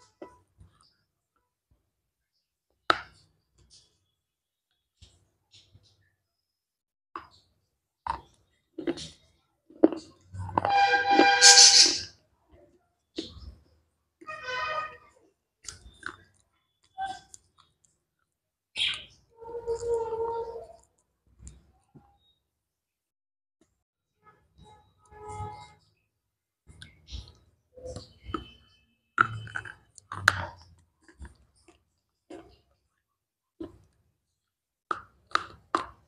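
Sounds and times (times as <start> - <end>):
chewing crunchy wafer: 8.0 - 11.8, 15.6 - 18.3, 29.2 - 33.0, 34.9 - 36.0.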